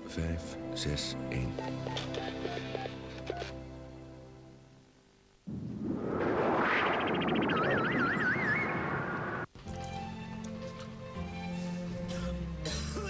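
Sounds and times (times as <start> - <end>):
loud rushing sound effect: 5.5 - 9.5
warbling whistle-like tone: 5.5 - 9.5.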